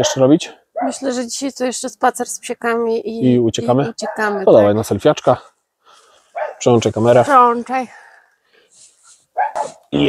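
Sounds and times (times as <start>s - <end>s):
dog barking: 0.0s - 1.0s, 4.0s - 4.7s, 6.3s - 6.7s, 9.4s - 9.9s.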